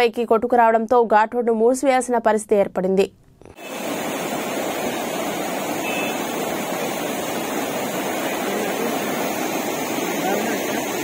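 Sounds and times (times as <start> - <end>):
floodwater rushing: 3.6 - 11.0.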